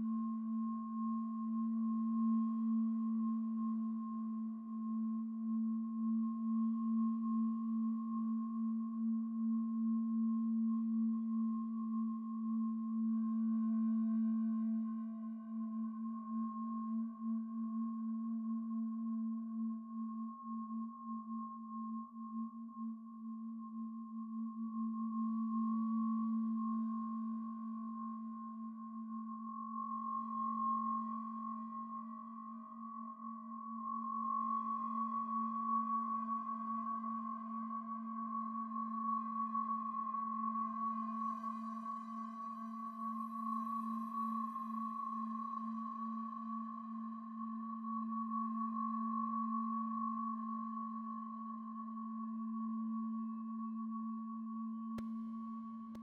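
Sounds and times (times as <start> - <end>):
faint high ringing tone: 0.0 - 56.0.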